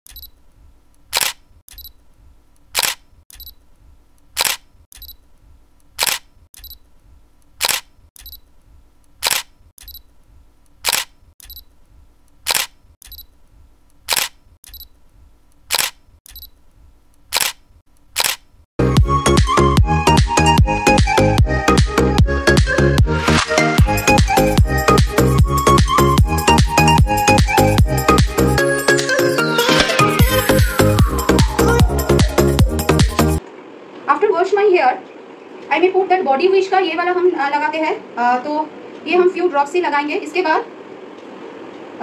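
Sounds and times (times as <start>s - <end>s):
camera shutter clicks: 1.1s - 1.9s, 2.8s - 3.5s, 4.4s - 5.2s, 6.0s - 6.8s, 7.6s - 8.4s, 9.2s - 10.0s, 10.8s - 11.6s, 12.5s - 13.2s, 14.1s - 14.9s, 15.7s - 16.5s, 17.3s - 17.6s, 18.2s - 18.5s
electronic dance music: 25.8s - 33.4s.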